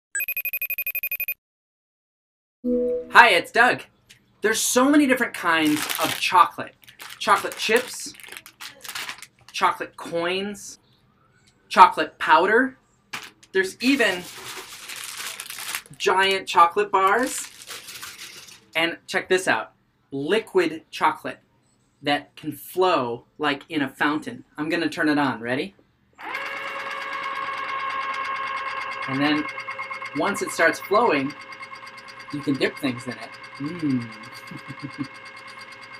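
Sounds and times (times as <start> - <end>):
ringtone trill: 0.2 - 1.4, 27.2 - 35.9
fountain motor humming: 26.2 - 35.9.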